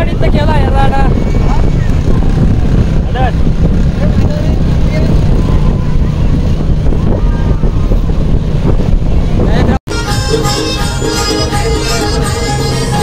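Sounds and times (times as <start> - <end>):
faint voices: 0.0 - 13.0
wind buffeting microphone: 0.0 - 13.0.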